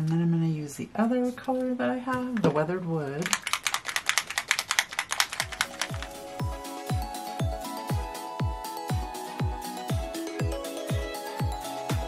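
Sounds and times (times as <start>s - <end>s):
quick tapping clicks: 3.2s - 6.2s
electronic music with kick drum: 5.5s - 12.0s.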